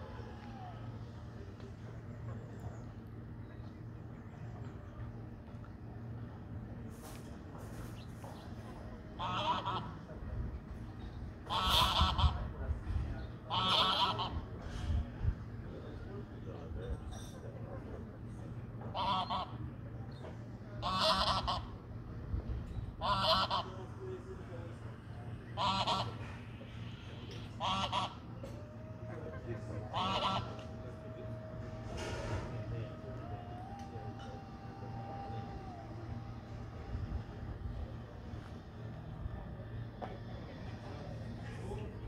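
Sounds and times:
geese honking: 9.2s - 10.0s, 11.5s - 12.5s, 13.5s - 14.4s, 18.9s - 19.6s, 20.8s - 21.7s, 23.0s - 23.8s, 25.6s - 36.8s
goose honk: 9.2s - 10.0s, 11.5s - 12.5s, 13.5s - 14.5s, 18.9s - 19.6s, 20.8s - 21.7s, 23.0s - 23.7s, 25.6s - 26.4s, 27.6s - 28.2s, 29.8s - 30.7s.

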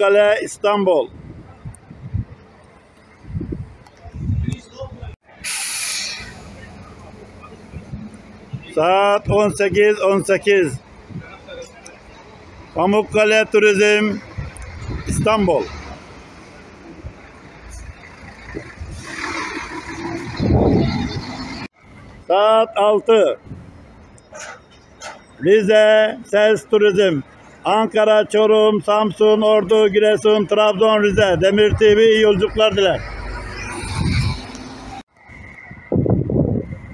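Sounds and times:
compressed air hissing: 5.4s - 6.6s.

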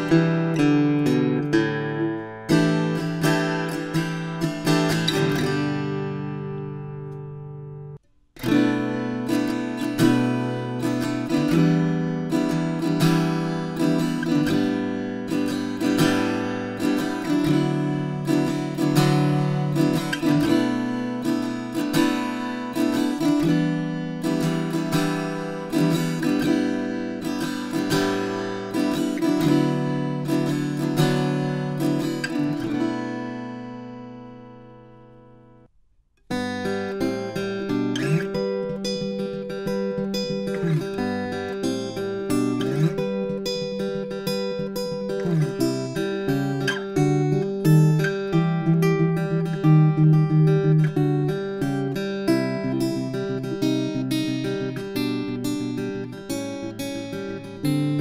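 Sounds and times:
acoustic guitar plucked notes: 0.0s - 58.0s.

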